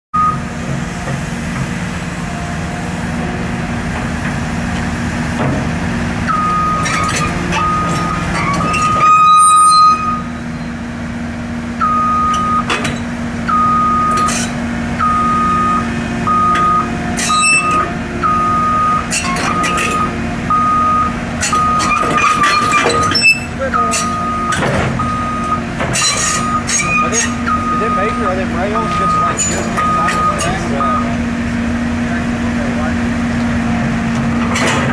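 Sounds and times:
travel alarm beeping: 0.2 - 0.6, 6.2 - 10.7, 11.8 - 12.8, 13.5 - 14.4, 15.0 - 22.0, 23.1 - 31.1
excavator diesel engine running: 0.2 - 34.9.

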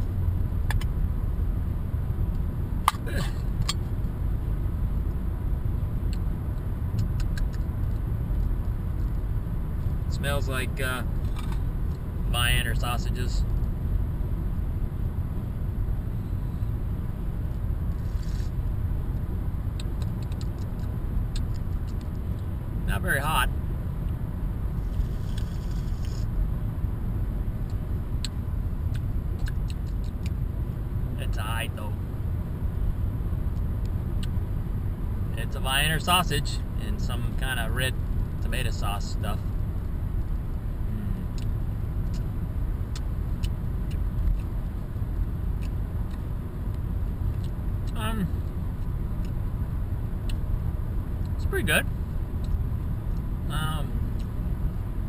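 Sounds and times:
car cabin road rumble: 0.0 - 55.0.

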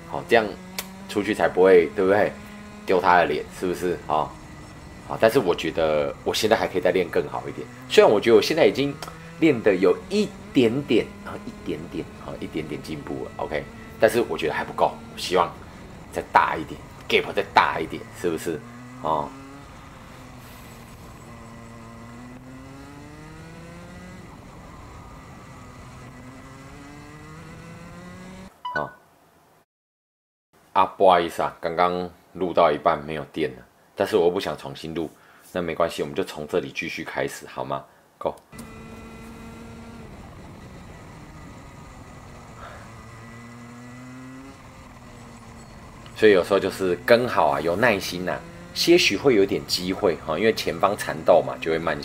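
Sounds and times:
kart engine revving: 0.0 - 28.5, 38.5 - 52.0.

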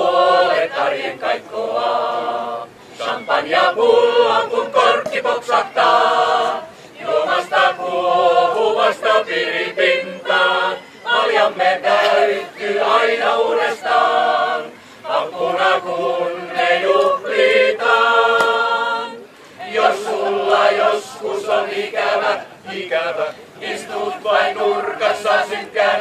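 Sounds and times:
mixed choir singing: 0.0 - 26.0
singers breathing: 2.7 - 3.1, 6.7 - 7.0, 14.7 - 15.1, 19.3 - 19.6.

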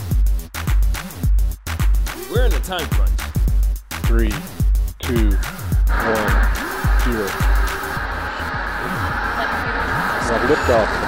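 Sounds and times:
background music: 0.0 - 11.0
rocket engines roaring: 5.9 - 11.0.

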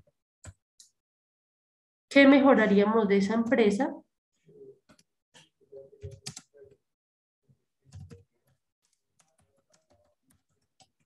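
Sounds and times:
typing on computer keyboard: 6.0 - 6.5, 7.9 - 11.0.

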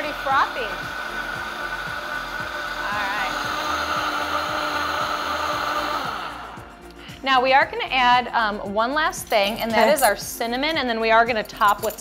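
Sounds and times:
blender motor whirring: 0.0 - 7.0.

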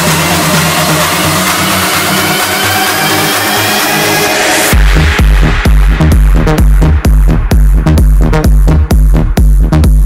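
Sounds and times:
synth riser and noise sweep: 0.0 - 8.0
electronic dance music: 0.0 - 10.0.

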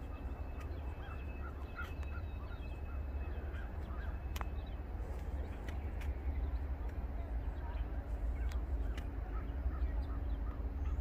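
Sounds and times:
birds chirping: 0.0 - 11.0
steady low rumble: 0.0 - 11.0.

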